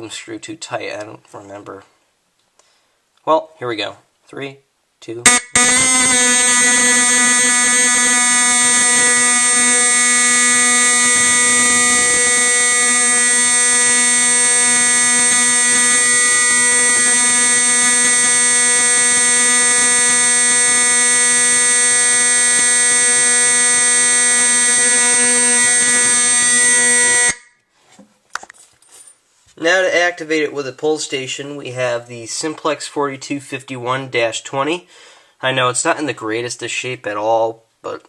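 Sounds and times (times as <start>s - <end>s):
fire alarm horn buzzing: 5.2s - 27.6s.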